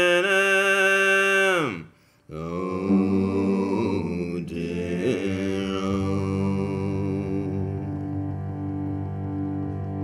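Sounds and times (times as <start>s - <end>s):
bowed strings drone: 2.7s - 10.0s.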